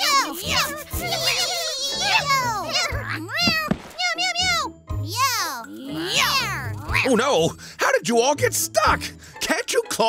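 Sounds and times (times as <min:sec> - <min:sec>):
children's music: 0:00.0 - 0:10.0.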